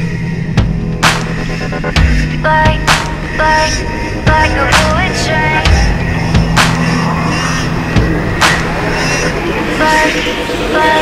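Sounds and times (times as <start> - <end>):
electronic music: 0.0 - 11.0.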